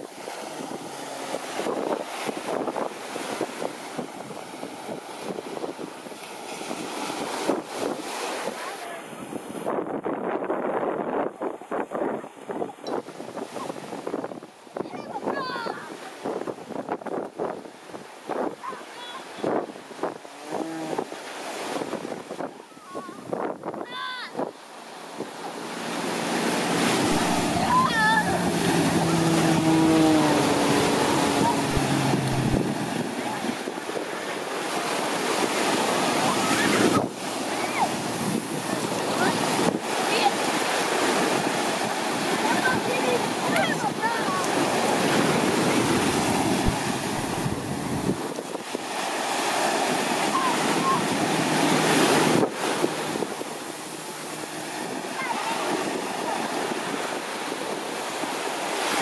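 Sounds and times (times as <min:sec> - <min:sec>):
surf: 0:00.0 - 0:59.0
wind buffeting microphone: 0:00.0 - 0:59.0
voices of onlookers: 0:25.3 - 0:34.0, 0:42.1 - 0:47.8.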